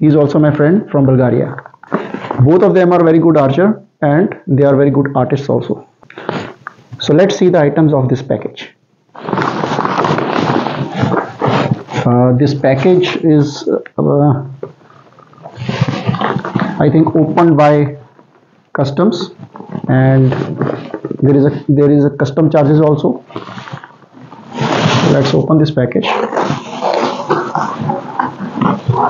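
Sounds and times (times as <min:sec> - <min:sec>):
person speaking: 0:07.0 - 0:23.3, 0:24.4 - 0:26.3
cardboard parcel rustling: 0:09.1 - 0:12.0.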